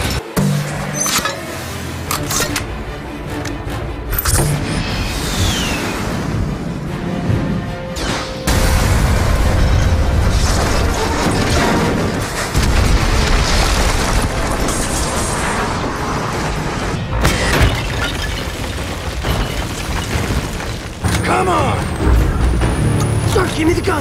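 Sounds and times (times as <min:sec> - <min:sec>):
film score music: 0:00.0 - 0:19.5, 0:20.3 - 0:24.0
explosion boom and rumble: 0:08.5 - 0:23.3
crashing debris: 0:08.5 - 0:23.4.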